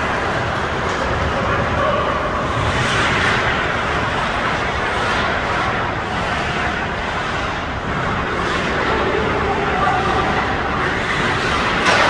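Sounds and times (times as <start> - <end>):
ice rink background hiss and rumble: 0.0 - 12.0.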